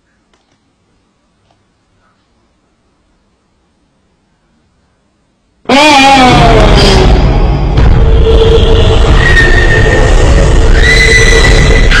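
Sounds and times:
distorted shriek-like screamer noise: 5.6 - 12.0.

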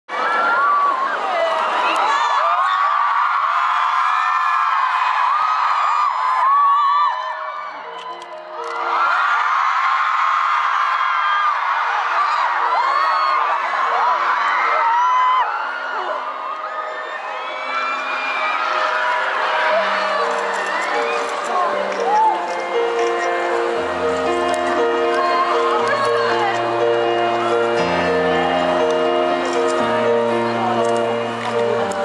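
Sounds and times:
crowd screaming and cheering: 0.1 - 32.0
slow piano notes: 16.3 - 32.0.

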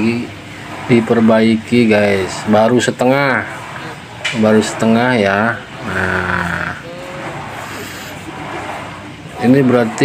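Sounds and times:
motorbike riding noise: 0.0 - 10.0.

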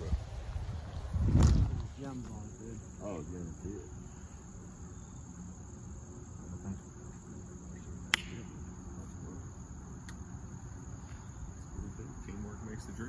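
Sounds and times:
insects chirring: 0.0 - 13.0
sharp click: 8.1 - 8.4.

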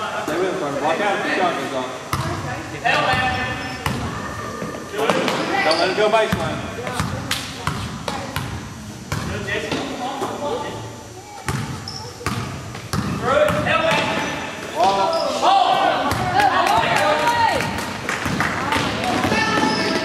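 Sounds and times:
spectators shouting and cheering: 15.4 - 20.0.

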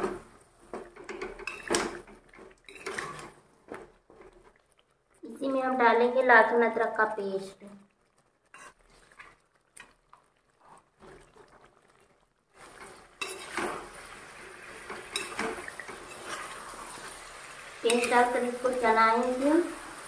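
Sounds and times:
frying sizzle: 0.0 - 20.0
spatula scraping metal pan: 1.0 - 3.4, 8.5 - 9.2, 12.6 - 19.6.

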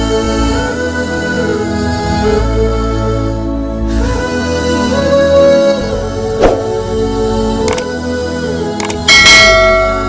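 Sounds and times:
background music: 0.0 - 10.0
bell chime ringing: 9.1 - 10.0.

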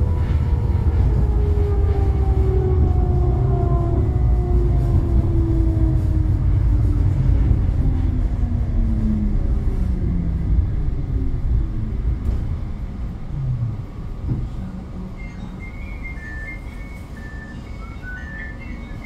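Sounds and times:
tram traction drive whine: 0.0 - 19.0
wheels rumbling on rails: 0.0 - 19.0.

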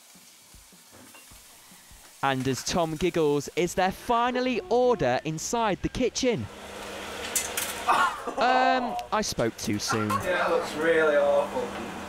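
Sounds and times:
meat sizzling in a frying pan: 0.0 - 4.2.

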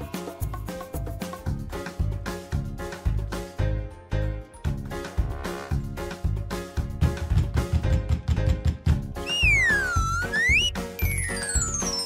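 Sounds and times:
upbeat music with steady beat: 6.5 - 12.0
whistle swooping down and up: 9.2 - 12.0.

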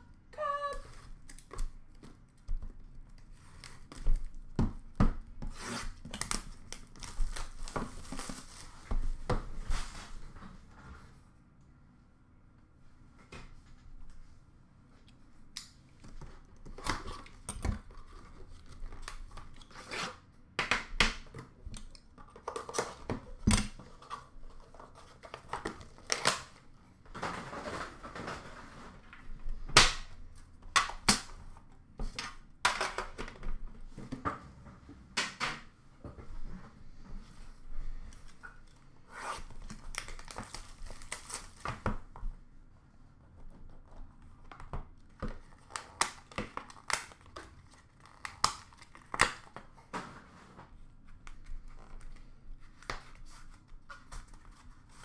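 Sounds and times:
wrapping tearing and crinkling: 5.5 - 8.9, 39.2 - 41.9, 45.4 - 49.6.

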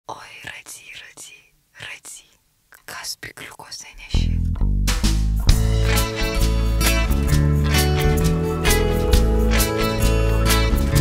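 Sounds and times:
person whispering: 0.1 - 4.5.

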